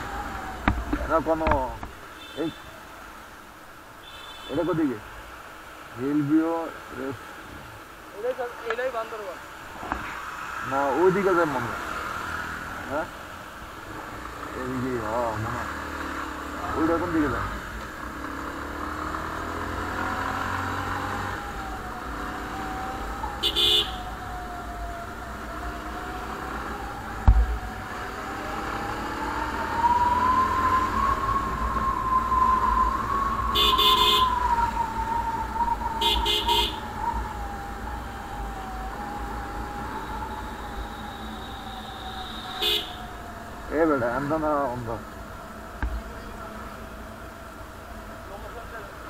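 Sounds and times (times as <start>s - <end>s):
motorcycle engine whine: 0.0s - 2.8s, 9.8s - 49.0s
motorcycle horn beeps: 23.4s - 24.0s, 33.6s - 34.3s, 36.0s - 36.8s, 42.3s - 43.0s
sharp thump: 27.2s - 27.6s, 45.8s - 46.0s.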